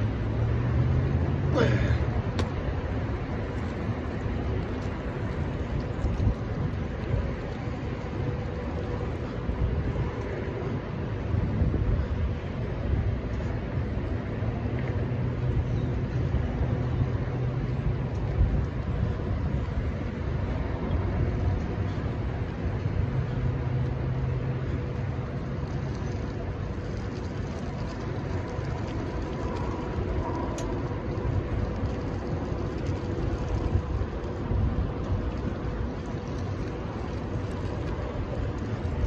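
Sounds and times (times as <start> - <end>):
road traffic rumble: 0.0 - 39.0
wind on microphone: 2.0 - 39.0.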